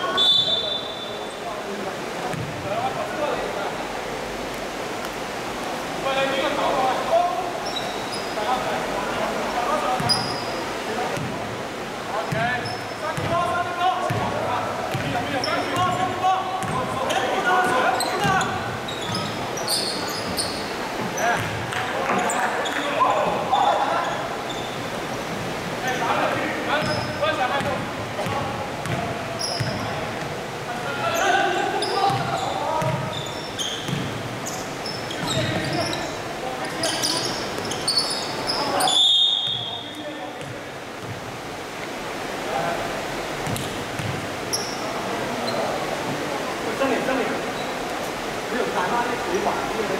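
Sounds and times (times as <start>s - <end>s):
sharp high whistle blast: 0.1s - 1.2s, 38.9s - 39.9s
basketball bouncing on gym floor: 2.3s - 2.6s, 13.2s - 13.4s, 14.0s - 14.3s, 14.9s - 16.0s, 16.6s - 16.9s, 21.3s - 21.8s, 26.8s - 30.3s, 32.1s - 33.2s, 33.8s - 34.3s, 43.4s - 44.2s.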